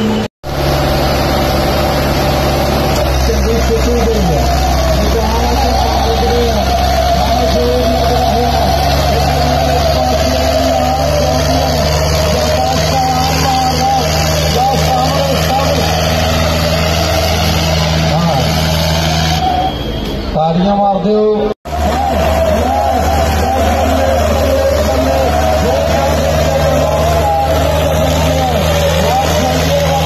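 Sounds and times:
tractor diesel engines under load: 0.0s - 30.0s.

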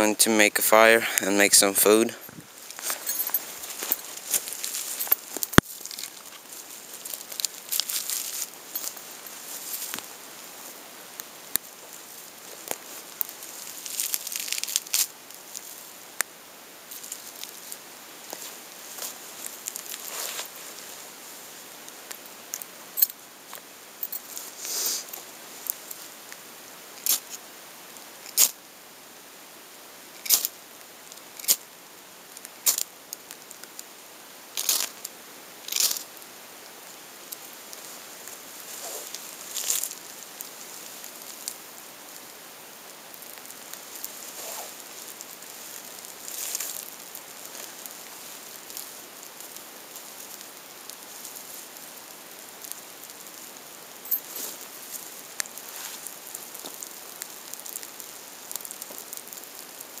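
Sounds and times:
rain hiss: 0.0s - 60.0s
campfire crackling and popping: 0.3s - 60.0s.

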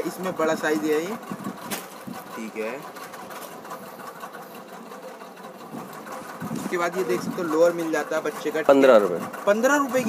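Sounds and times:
small machine clattering: 0.0s - 10.0s.

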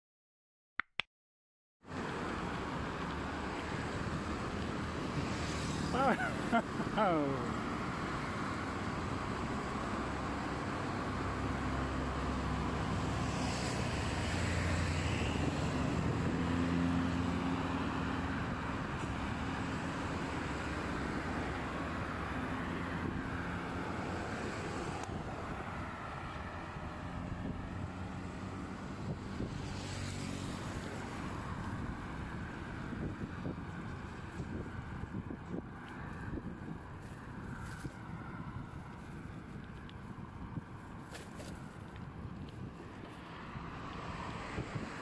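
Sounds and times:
road traffic: 1.8s - 45.0s
close car engine hum: 5.8s - 8.0s.

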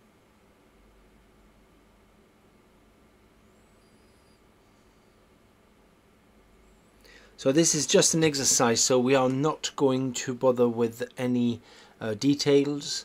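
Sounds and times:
faint low hum: 0.0s - 13.0s
faint high-pitched wavering sound: 0.1s - 7.9s.

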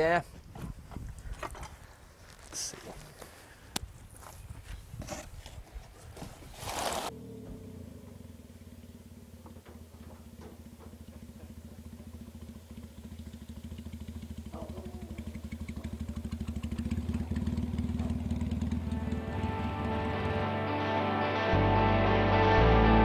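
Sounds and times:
motorcycle engine running: 7.0s - 21.1s
music: 18.9s - 23.0s.

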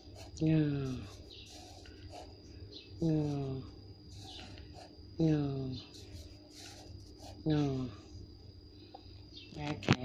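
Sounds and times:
marker scratching on paper: 0.0s - 3.5s, 4.1s - 5.0s, 5.8s - 8.2s
woman speaking: 0.4s - 1.2s, 3.0s - 3.8s, 5.2s - 6.0s, 7.5s - 8.0s.

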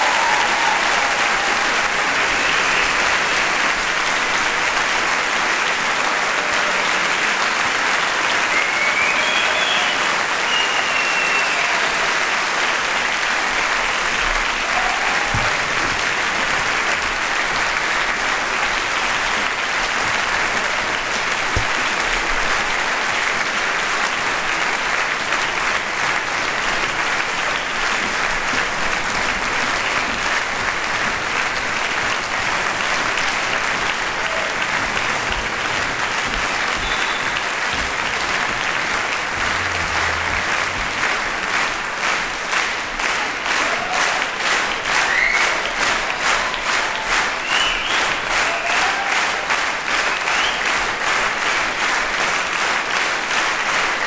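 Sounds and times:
audience applauding: 0.0s - 54.0s
rising whistle: 8.6s - 11.6s.

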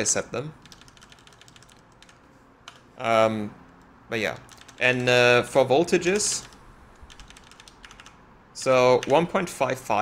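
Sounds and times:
keyboard keys clicking: 0.6s - 2.8s, 3.8s - 5.2s, 6.1s - 8.2s.

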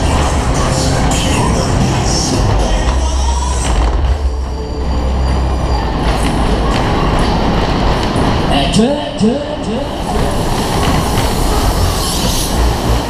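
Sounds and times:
ride cars rumbling on rails: 0.0s - 13.0s
rushing air: 9.5s - 13.0s.

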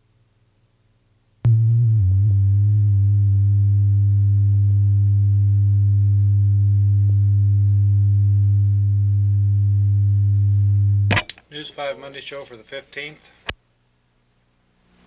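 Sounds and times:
low-pitched line-up tone: 1.5s - 11.3s.

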